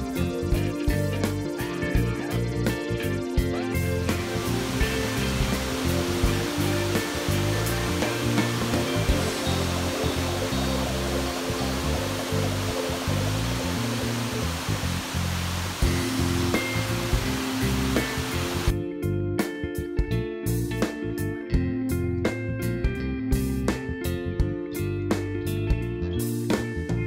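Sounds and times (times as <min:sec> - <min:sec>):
background music: 0:00.0 - 0:27.0
waterfall rushing: 0:04.0 - 0:18.7.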